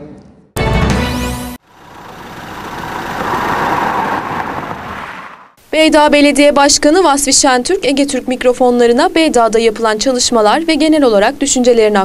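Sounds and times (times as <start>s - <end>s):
car approaching on a road: 1.6s - 5.6s.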